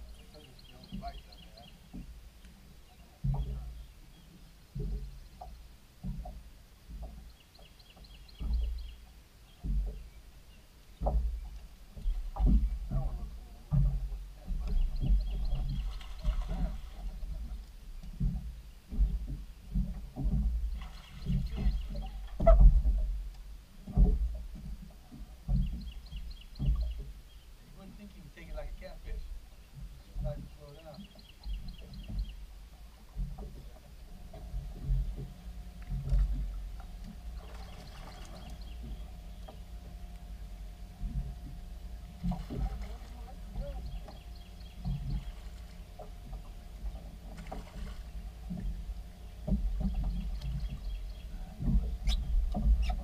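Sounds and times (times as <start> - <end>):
bird ticking calls: 0.0 - 5.6, 7.0 - 13.2, 14.6 - 16.2, 21.0 - 22.4, 25.5 - 27.5, 28.4 - 32.5, 34.3 - 47.3, 48.0 - 53.0
water slapping against boat hull: 0.0 - 10.2, 10.9 - 53.0
fish splashing: 42.2 - 50.8.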